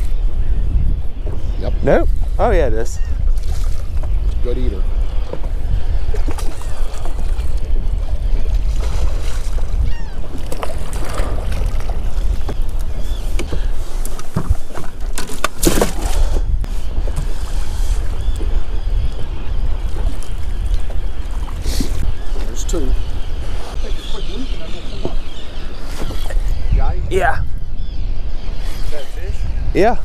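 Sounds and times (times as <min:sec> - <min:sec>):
boat noise on water: 0:00.0 - 0:29.3
wind: 0:00.0 - 0:30.0
sharp knocks in boat: 0:13.3 - 0:16.4.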